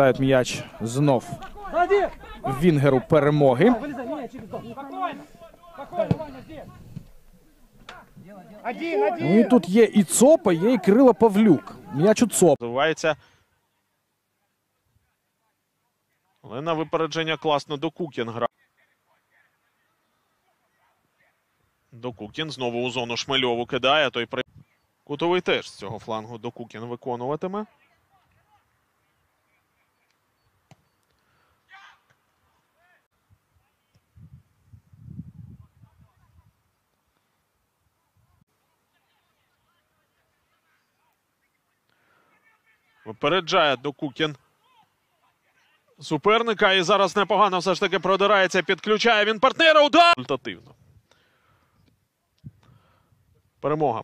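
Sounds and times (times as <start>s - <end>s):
man commentating: 0.0s - 6.8s, 7.9s - 12.7s, 46.0s - 50.6s.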